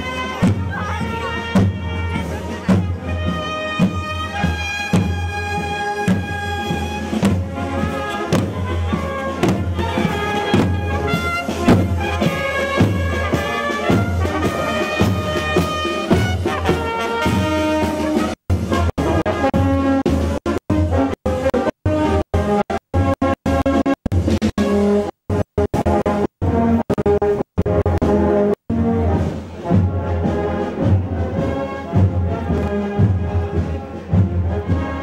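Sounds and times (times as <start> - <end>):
brass band playing a march: 0.0 - 35.0.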